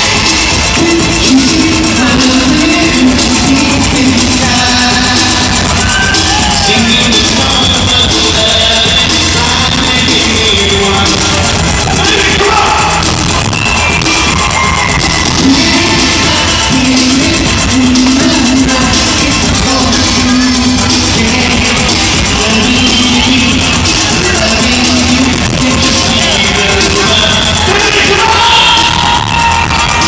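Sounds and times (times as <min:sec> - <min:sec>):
live band with singer: 0:00.0 - 0:30.0.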